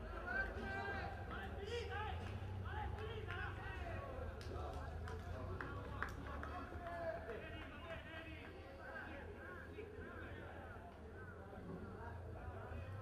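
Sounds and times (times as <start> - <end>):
people shouting and talking: 0.0 - 13.0.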